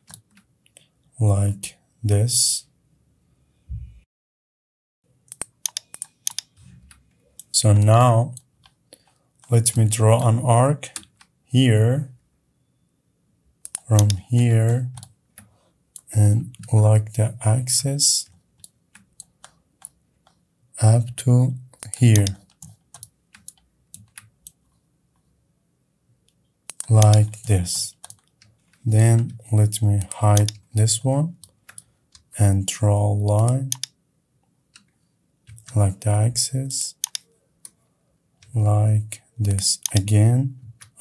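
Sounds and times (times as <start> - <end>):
keyboard and mouse clicks: 0.0 - 0.8, 5.3 - 11.4, 13.6 - 14.2, 21.7 - 24.6, 26.7 - 29.4, 30.0 - 30.7, 31.4 - 32.3, 33.3 - 34.0, 34.7 - 35.9, 36.6 - 37.8, 39.4 - 41.0.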